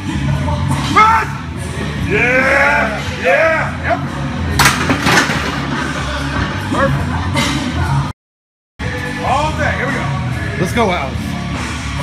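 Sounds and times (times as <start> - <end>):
background music: 0.0 - 8.1, 8.8 - 12.0.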